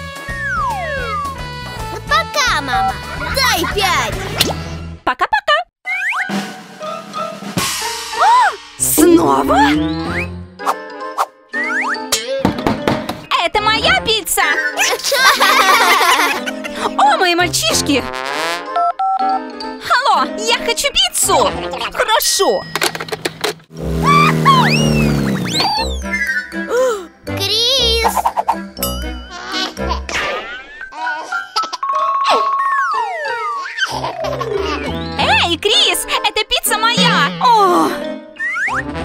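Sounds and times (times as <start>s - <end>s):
background music with drums: 6.3s - 9.7s
cartoon engine-like hum: 9.0s - 10.6s, 23.7s - 26.4s
springy boing glides: 23.8s - 26.0s
swooping tone: 23.8s - 26.2s
rising whistles: 24.0s - 26.6s.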